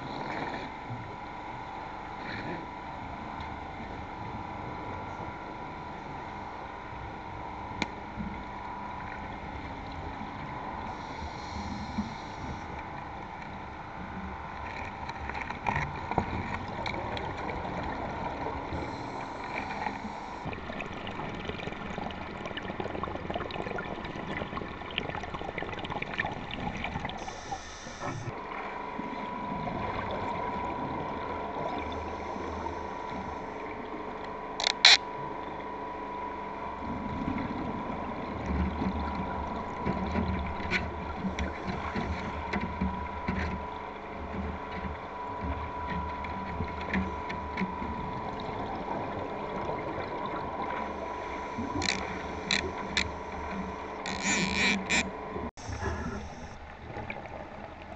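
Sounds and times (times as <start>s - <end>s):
underwater gurgling and bubbling: 0.0s - 57.9s
diver's exhaled air bubbling: 48.2s - 57.4s.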